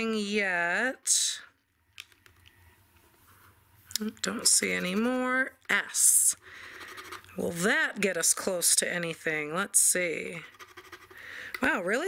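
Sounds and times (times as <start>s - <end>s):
quiet room hum: 0.0s - 12.0s.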